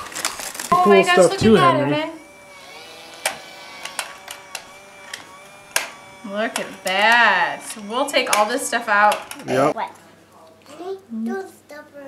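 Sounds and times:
faint steady tones: 0.7 - 9.8.

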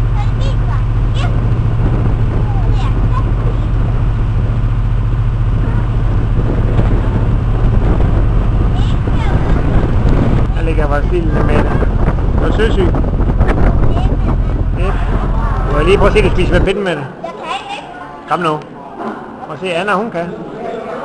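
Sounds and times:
boat engine droning: 0.0 - 17.2
faint voices: 0.0 - 21.0.

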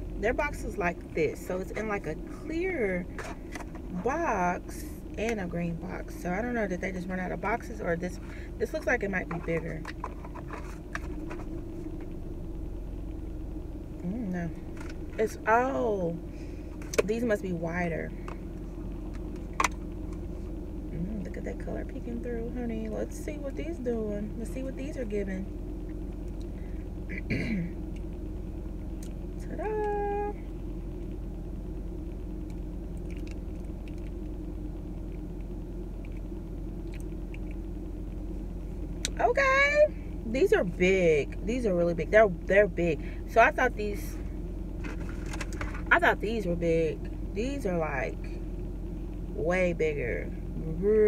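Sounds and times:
car engine idling: 0.0 - 51.0.

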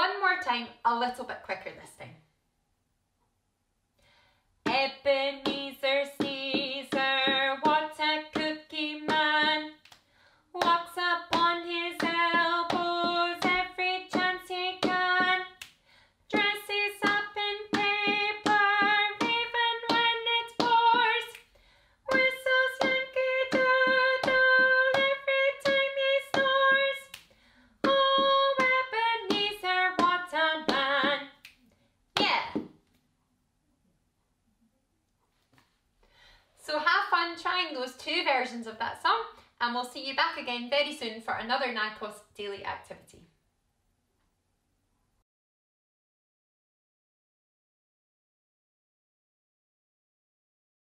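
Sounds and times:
woman singing unaccompanied: 4.7 - 9.8, 10.6 - 15.6, 16.3 - 21.4, 22.1 - 27.2, 27.8 - 31.4
drumstick tapping on carpeted floor: 6.2 - 9.7, 10.6 - 15.5, 16.3 - 21.4, 22.1 - 26.7, 27.8 - 31.2.

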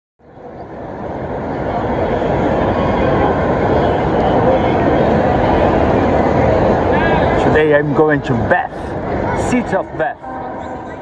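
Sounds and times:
crowd chatter: 0.2 - 11.0.

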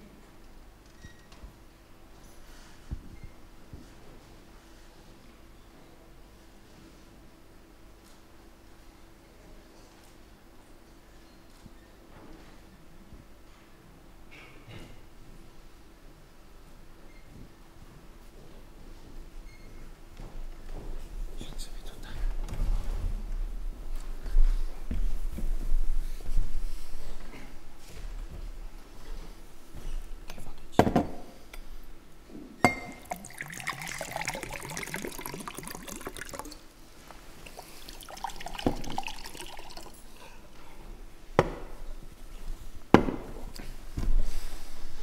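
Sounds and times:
small knocks and rustles: 17.2 - 31.3
hushed whispering: 21.4 - 22.4, 30.3 - 30.8
water pouring into a glass: 32.7 - 36.7, 37.4 - 40.2.

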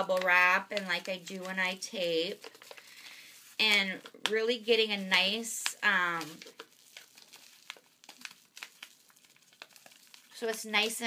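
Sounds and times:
paper crinkling: 0.0 - 11.0.

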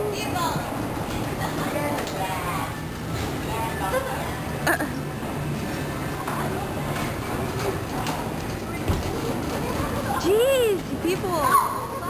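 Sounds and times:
carousel rumble and rattle: 0.0 - 12.0
faint voices: 0.0 - 12.0.

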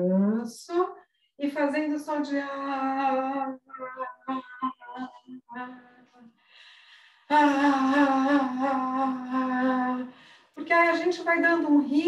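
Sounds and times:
woman vocalizing short tones: 3.6 - 6.3
faint breath: 6.4 - 7.3, 10.1 - 10.6.

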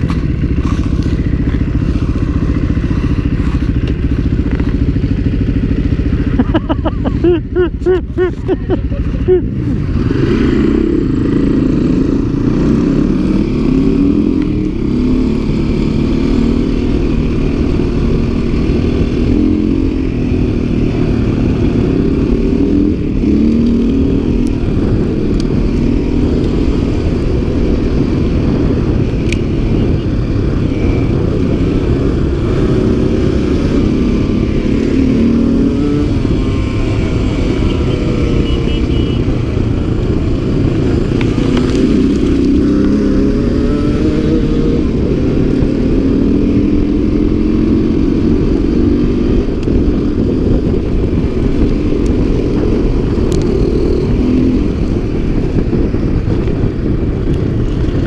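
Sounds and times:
dirt bike engine revving: 9.6 - 29.0, 29.7 - 39.8, 40.6 - 49.5.

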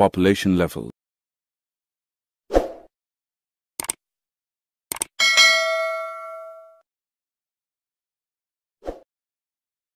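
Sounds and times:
double mouse click: 3.8 - 4.0, 4.9 - 5.1
notification bell ding: 5.2 - 6.8.

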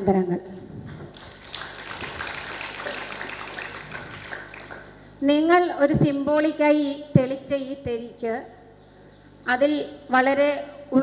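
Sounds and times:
audience applauding: 1.0 - 5.0.

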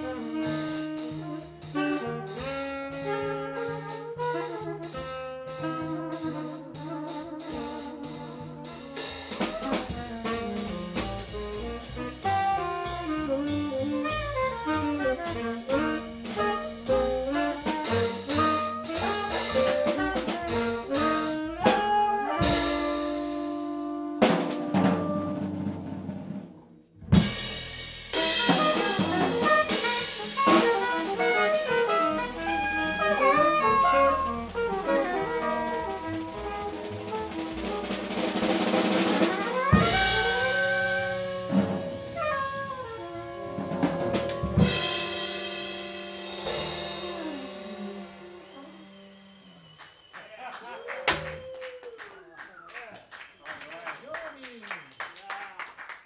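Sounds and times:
soprano saxophone: 0.0 - 25.5, 28.3 - 49.8
tenor saxophone: 0.0 - 25.7, 28.2 - 50.1
drum kit: 0.0 - 50.4, 51.0 - 51.6
upright bass: 6.8 - 25.5, 27.0 - 38.0, 39.7 - 48.4.

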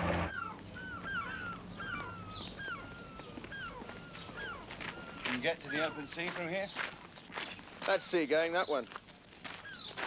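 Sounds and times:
gulls calling: 0.0 - 10.0.

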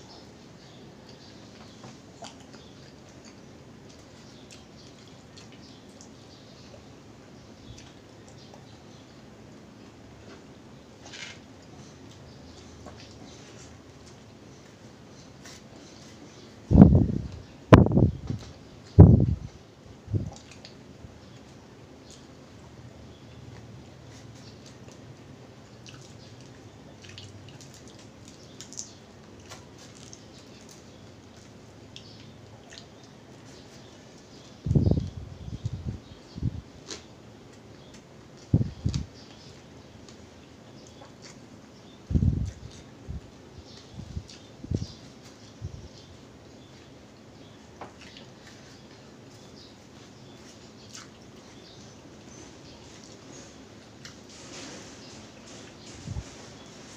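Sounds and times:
mouth chewing: 1.0 - 6.9, 20.2 - 20.8, 23.3 - 35.8, 46.6 - 54.2
fingers picking through food: 20.2 - 22.4, 23.3 - 56.9
wet eating clicks and smacks: 20.3 - 20.8, 25.7 - 33.2, 50.8 - 51.4.

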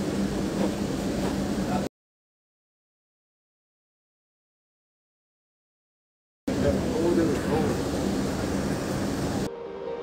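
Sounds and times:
bus engine and road rumble: 0.0 - 1.9, 6.5 - 9.5.

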